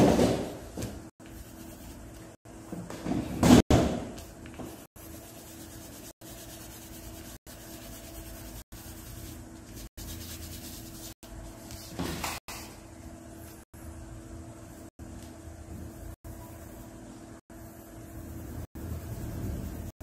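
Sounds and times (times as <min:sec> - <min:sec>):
pencil rubbing on paper: 0:01.2 - 0:02.3, 0:04.9 - 0:11.2
faint steady hum: 0:12.6 - 0:20.0.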